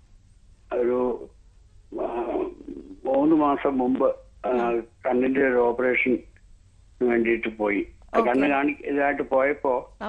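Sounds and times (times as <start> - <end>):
woman talking: 4.5 - 4.8, 8.2 - 8.5.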